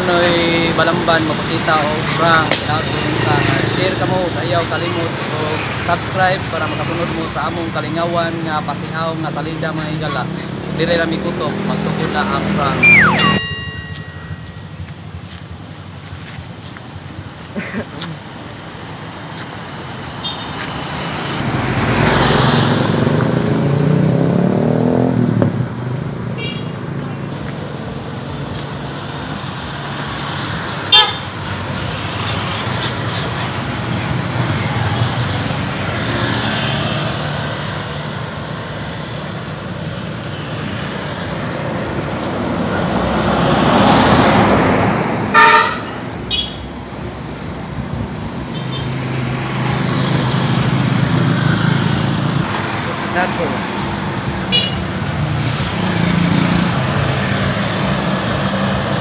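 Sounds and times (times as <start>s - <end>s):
road traffic passing: 0.0s - 59.0s
car horn toots: 30.9s - 31.3s, 45.3s - 46.6s.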